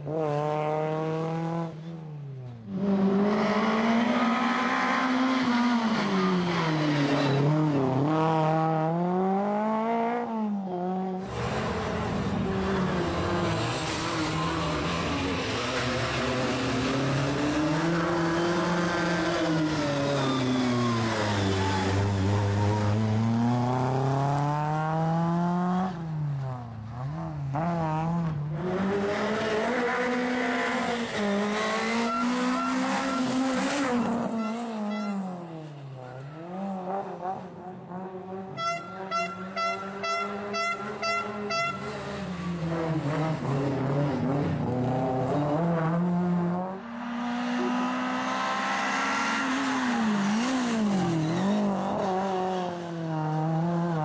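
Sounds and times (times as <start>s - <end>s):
rally car engine revving: 0.0s - 1.9s, 2.6s - 54.0s.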